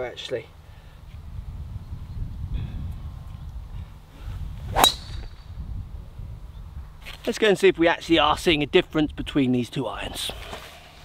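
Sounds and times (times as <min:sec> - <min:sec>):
golf driver striking ball: 0:04.7 - 0:05.4.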